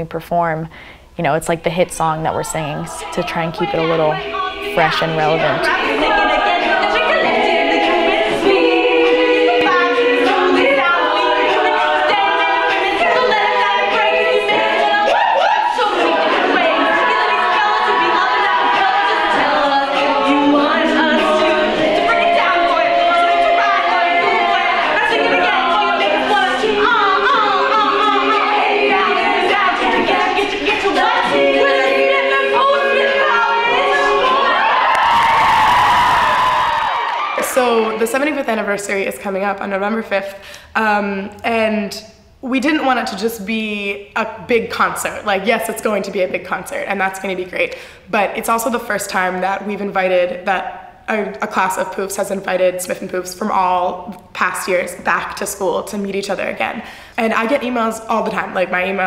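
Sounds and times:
women singing a cappella: 0.0 - 35.0, 37.4 - 59.0
crowd cheering: 14.9 - 19.2, 30.9 - 38.0.

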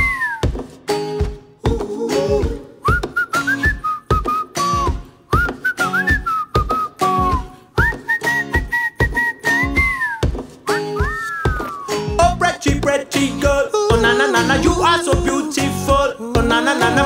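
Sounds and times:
whistled melody: 0.0 - 0.5, 2.8 - 12.2
steady drum beat: 0.4 - 17.0.

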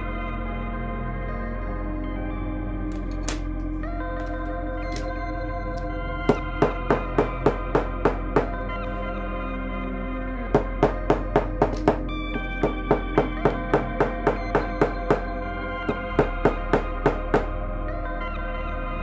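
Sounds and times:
background music: 0.0 - 19.0
hammer tapping iron through leather: 6.3 - 8.6, 10.6 - 15.3, 15.9 - 17.5.

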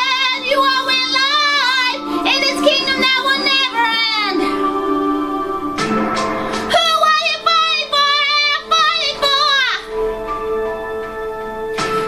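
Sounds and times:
woman singing worship song: 0.0 - 9.9
sustained instrumental accompaniment: 0.0 - 12.0.

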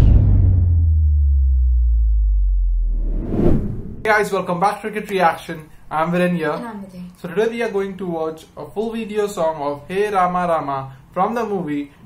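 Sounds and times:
deep bass boom: 0.0 - 4.1
loud low hum: 0.0 - 4.1.

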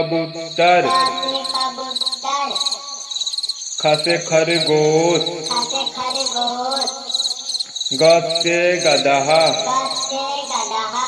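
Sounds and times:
person speaking: 0.0 - 2.7, 3.8 - 7.1, 7.9 - 11.0
pitched voice melody: 0.0 - 2.8, 3.9 - 7.1, 7.9 - 11.0
cricket-like chirping: 0.0 - 11.0.

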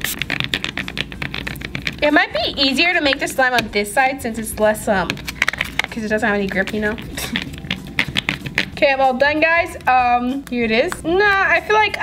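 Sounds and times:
slime being kneaded: 0.0 - 3.8, 4.8 - 12.0.

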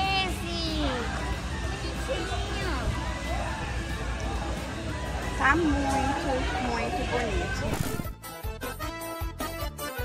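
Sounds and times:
faint chatter of people: 0.0 - 8.1
music playing: 0.0 - 10.0.

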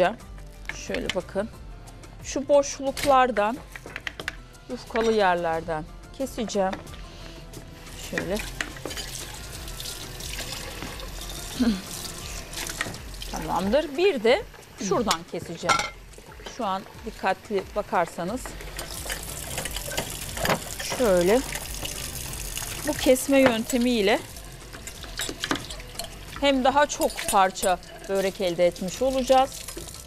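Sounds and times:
person murmuring: 11.5 - 12.0.

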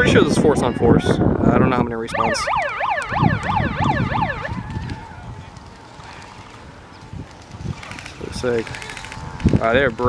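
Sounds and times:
siren yelping: 2.1 - 5.3.

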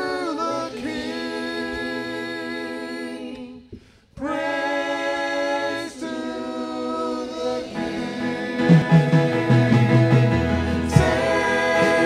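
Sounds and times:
group singing worship song: 0.0 - 12.0.

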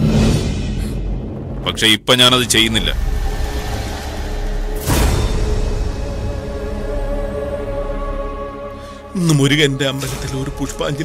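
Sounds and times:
sweeping whoosh: 2.3 - 8.7
suspense music drone: 2.6 - 11.0.

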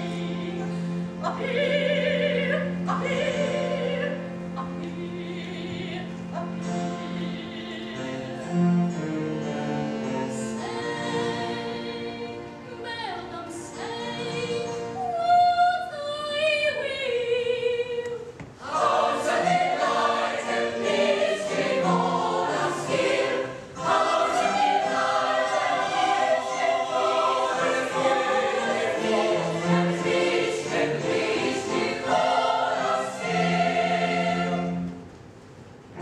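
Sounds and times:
opera chorus singing: 0.0 - 9.0, 9.6 - 35.0
string orchestra: 0.0 - 15.0, 18.6 - 36.0.

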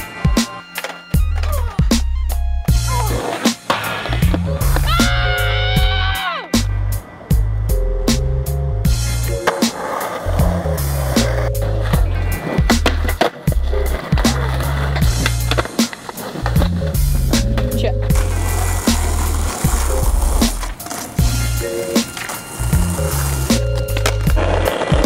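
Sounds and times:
skateboard wheels rolling on pavement: 0.0 - 2.1, 2.7 - 25.0
skateboards clacking: 0.0 - 6.0, 9.2 - 25.0.

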